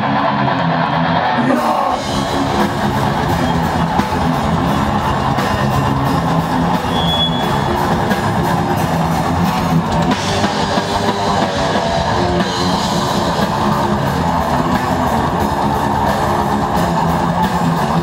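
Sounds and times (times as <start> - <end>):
bass riffing: 0.0 - 18.0
drum kit: 0.0 - 18.0
electric guitar riffing: 0.0 - 18.0
metal band playing: 0.0 - 18.0.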